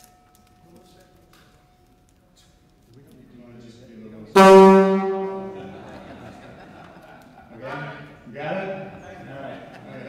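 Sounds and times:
loud low horn blast: 4.4s - 5.9s.

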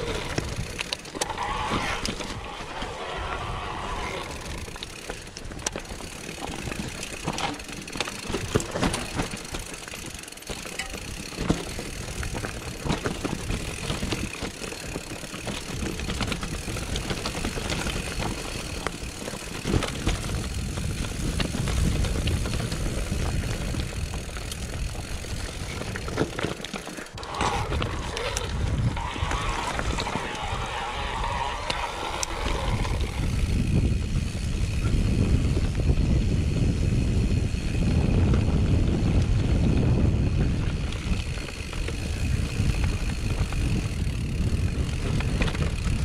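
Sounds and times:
bike clattering over rough ground: 0.0s - 46.0s
bike tyres over dirt and stones: 0.0s - 46.0s.

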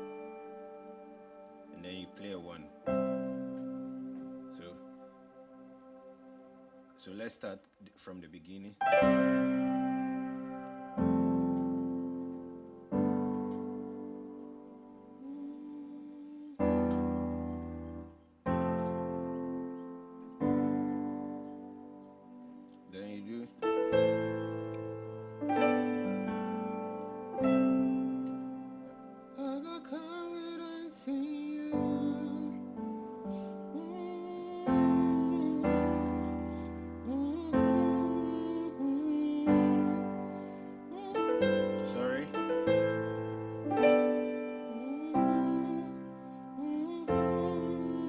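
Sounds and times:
person singing softly: 0.0s - 7.3s, 8.9s - 18.0s, 25.5s - 48.0s
piano chords: 0.0s - 7.5s, 8.8s - 48.0s.

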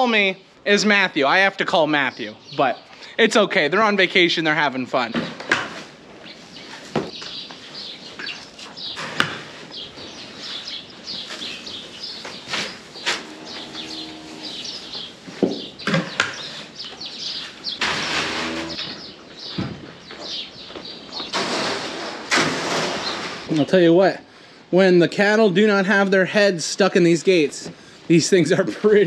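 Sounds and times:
small birds chirping: 0.0s - 5.4s, 6.2s - 21.4s
cow mooing: 13.2s - 14.8s, 18.2s - 18.9s
feed shoveling scrape: 17.7s - 18.8s.

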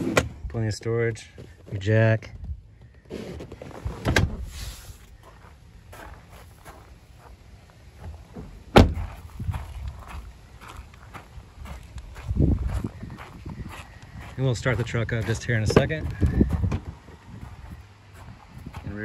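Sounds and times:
footsteps on gravel: 5.0s - 19.0s
car door slamming: 8.4s - 9.2s.

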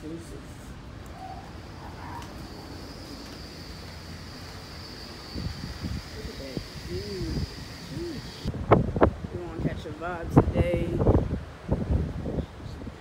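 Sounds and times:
steady background hiss: 0.0s - 13.0s
wind buffeting microphone: 0.7s - 13.0s
faint high whine: 1.1s - 8.5s.

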